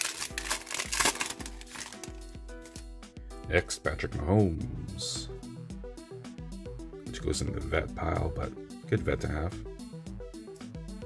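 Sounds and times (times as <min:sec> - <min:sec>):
foil wrapper crinkling: 0:00.0 - 0:02.8
background music: 0:00.0 - 0:11.0.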